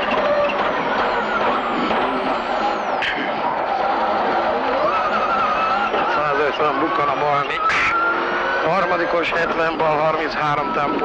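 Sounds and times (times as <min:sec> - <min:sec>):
car engine running hard: 0:00.0 - 0:11.0
high turbo whine: 0:00.0 - 0:11.0.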